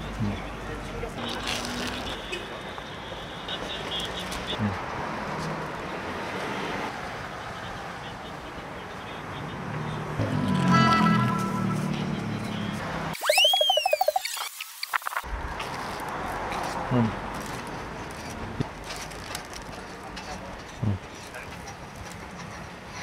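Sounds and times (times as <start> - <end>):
street noise: 0.0 - 23.0
cartoon whistle rising and falling: 13.2 - 14.5
warbling tone: 13.2 - 15.2.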